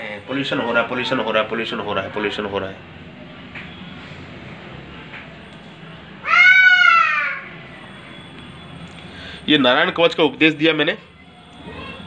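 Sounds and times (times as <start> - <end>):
cat meowing: 6.2 - 7.5.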